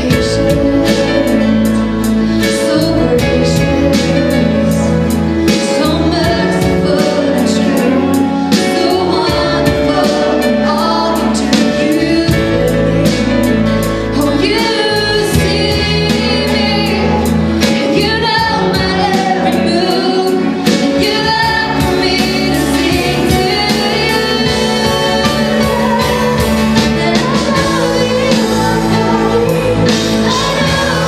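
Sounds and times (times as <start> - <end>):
band playing worship song: 0.0 - 31.0
woman singing lead: 0.0 - 31.0
drums beating: 14.4 - 31.0.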